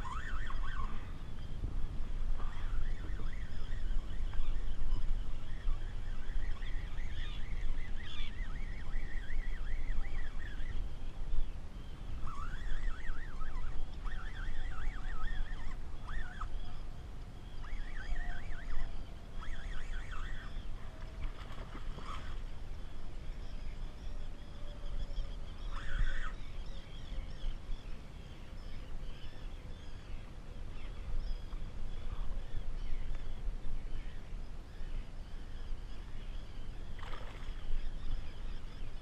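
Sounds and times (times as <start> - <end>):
low rumble of wind and water: 0.0 - 39.0
seabirds calling: 0.0 - 39.0.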